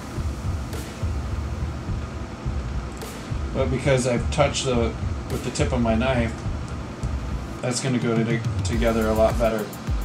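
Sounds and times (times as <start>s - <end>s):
steady low rumble: 0.0s - 7.6s.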